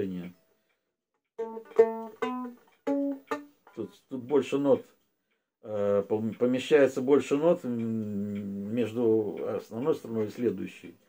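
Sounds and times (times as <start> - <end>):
plucked string notes: 1.4 - 4.9.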